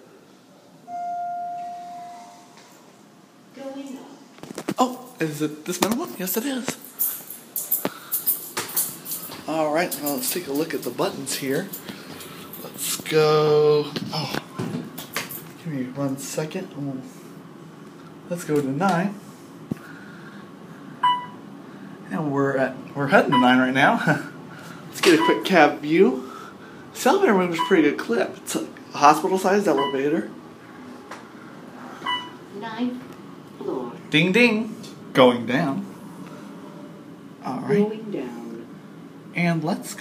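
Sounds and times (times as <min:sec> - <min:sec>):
elevator arrival chime: 0:00.8 - 0:02.7, 0:29.7 - 0:30.1.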